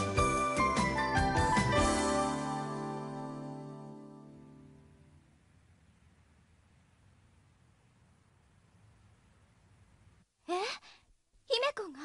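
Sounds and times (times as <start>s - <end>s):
faint low hum: 4.0s - 12.0s.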